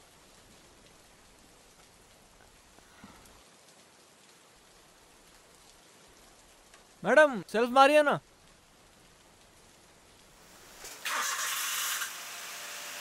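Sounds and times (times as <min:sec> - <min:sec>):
faint room tone hiss: 0:00.0 - 0:11.1.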